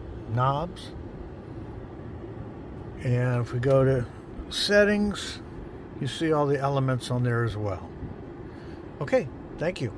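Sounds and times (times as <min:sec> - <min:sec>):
car cabin hum: 0:00.0 - 0:09.9.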